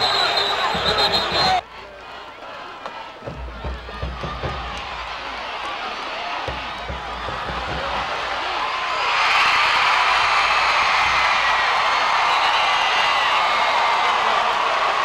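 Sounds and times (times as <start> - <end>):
stadium crowd cheering and yelling: 0.0 - 15.0.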